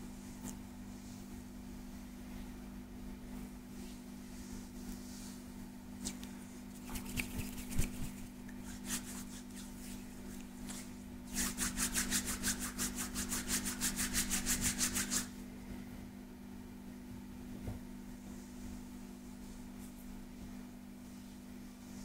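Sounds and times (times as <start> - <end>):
hands rubbing bare skin: 3.8 - 15.3.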